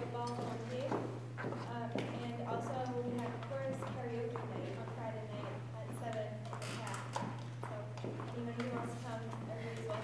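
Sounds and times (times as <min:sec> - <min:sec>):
electrical hum: 0:00.0 - 0:10.0
footsteps on hard floor: 0:00.4 - 0:04.8.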